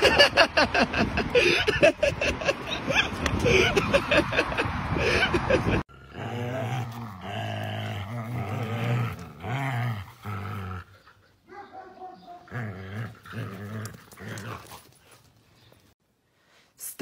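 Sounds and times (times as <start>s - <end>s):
dogs growling in play: 5.9s - 11.2s, 12.3s - 15.1s.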